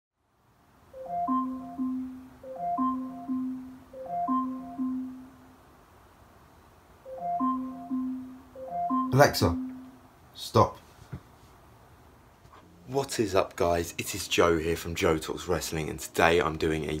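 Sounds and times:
smart speaker alarm chime: 1.0 - 5.4, 7.1 - 10.0.

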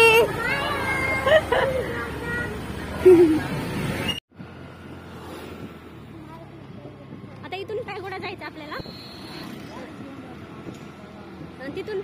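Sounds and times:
road and vehicle noise: 0.0 - 12.0.

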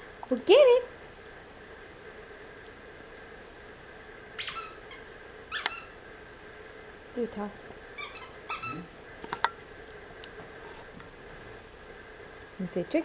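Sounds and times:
squeaky dog toy squeaks: 4.4 - 6.0, 8.0 - 8.9.

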